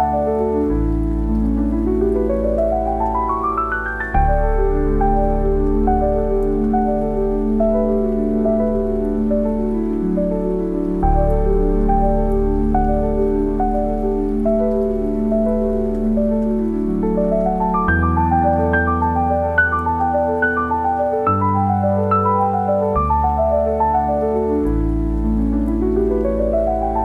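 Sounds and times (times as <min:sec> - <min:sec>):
slow gentle solo piano: 0:00.0 - 0:27.0
steady rain: 0:00.0 - 0:27.0.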